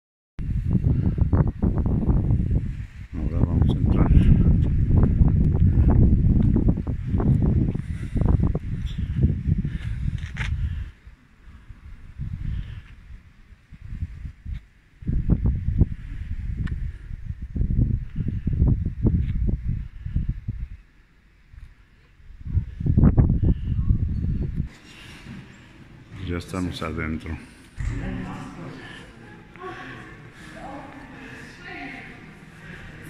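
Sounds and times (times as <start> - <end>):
wind buffeting microphone: 0.4 - 26.5, 27.7 - 33.0.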